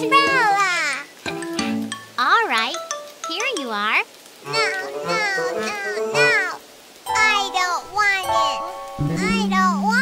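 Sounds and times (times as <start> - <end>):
children's song backing: 2.6 - 10.0
cartoon child voice singing: 4.4 - 10.0.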